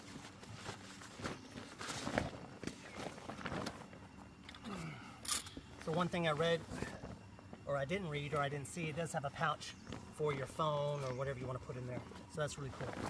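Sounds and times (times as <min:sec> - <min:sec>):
heavy cloth rustling and flapping: 0:00.0 - 0:04.4.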